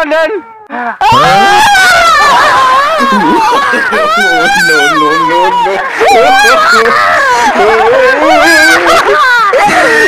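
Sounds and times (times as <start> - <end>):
person wailing and whimpering: 0.4 - 10.0.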